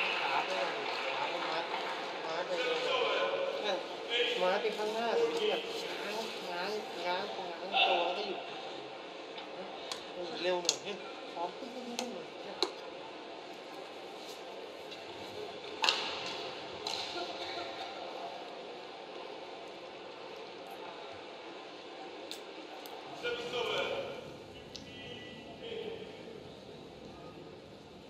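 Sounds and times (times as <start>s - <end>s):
low talking: 23.0s - 27.2s.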